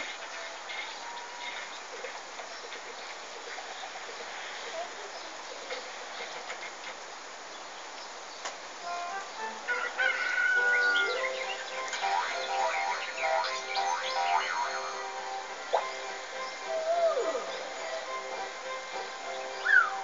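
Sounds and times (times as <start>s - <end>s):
rain falling on wet street: 0.0s - 13.8s
pitched calls or notes: 8.8s - 20.0s.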